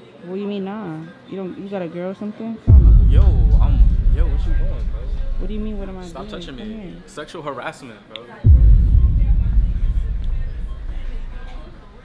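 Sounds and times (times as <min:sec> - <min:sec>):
deep bass boom: 0:02.7 - 0:07.1, 0:08.5 - 0:12.0.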